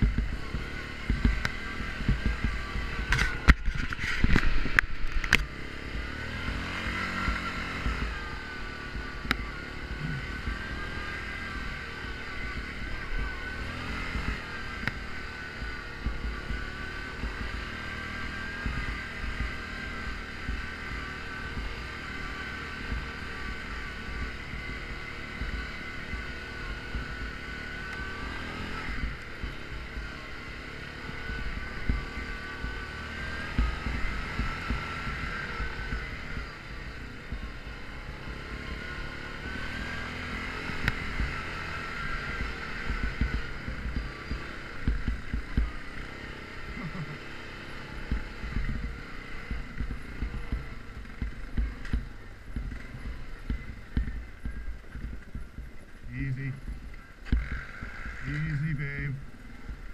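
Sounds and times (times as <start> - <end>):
engine running: 0.0 - 59.9.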